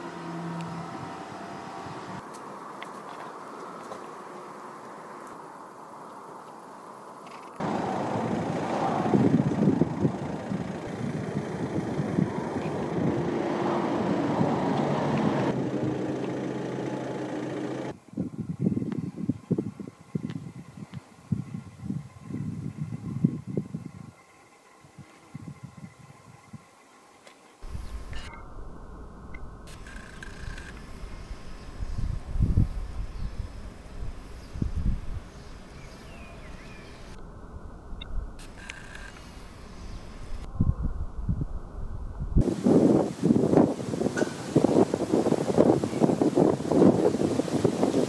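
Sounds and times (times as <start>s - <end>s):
low rumble in gusts: 7.6s - 24.2s, 27.6s - 48.0s.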